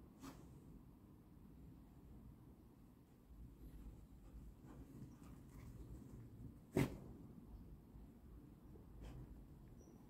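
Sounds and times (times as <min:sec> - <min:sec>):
dog puffing breath through nose: 0:06.7 - 0:07.2.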